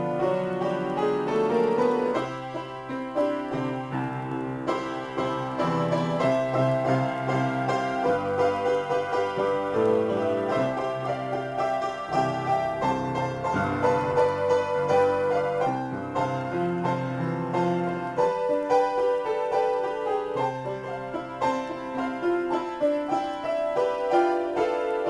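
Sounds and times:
solo piano improvisation: 0.0s - 25.0s.

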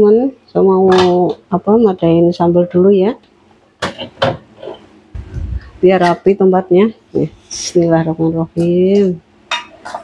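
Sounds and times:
low dull rumble: 5.2s - 5.9s.

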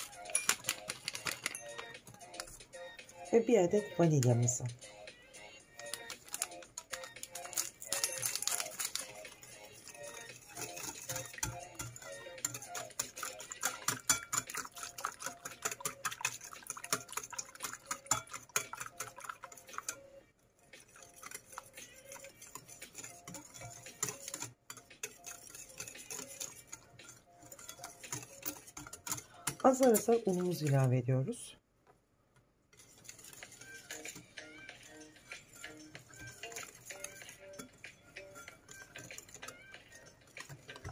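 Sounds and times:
whisk scraping a ceramic bowl: 0.0s - 4.6s, 5.4s - 31.0s, 32.7s - 40.9s
soft background music: 0.0s - 31.6s, 32.9s - 40.9s.

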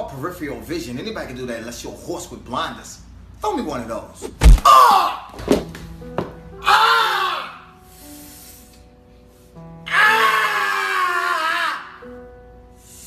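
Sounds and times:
man wailing in pain: 4.6s - 5.2s, 6.6s - 7.6s, 9.8s - 12.0s
background music with held notes: 5.5s - 13.0s.

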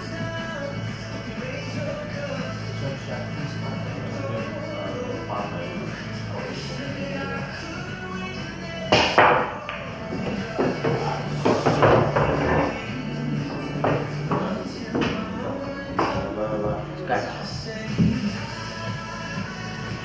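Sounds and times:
background music: 0.0s - 20.0s
pool cue striking ball: 8.9s - 12.8s
pool balls knocking: 8.9s - 16.4s.

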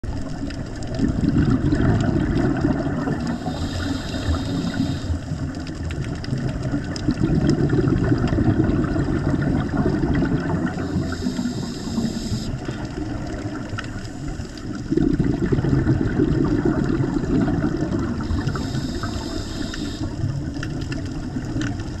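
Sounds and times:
exhaled air bubbling underwater: 0.0s - 22.0s
scuba regulator inhalation hiss: 3.2s - 5.5s, 10.4s - 13.0s, 13.9s - 14.9s, 18.2s - 20.4s.

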